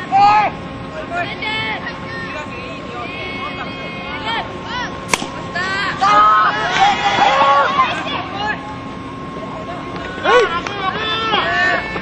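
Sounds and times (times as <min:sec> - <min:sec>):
bat hitting ball: 0:05.1 - 0:05.4.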